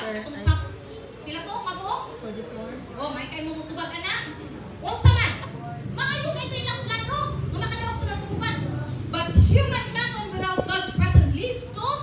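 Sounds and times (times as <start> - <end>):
woman speaking animatedly: 4.9 - 12.0.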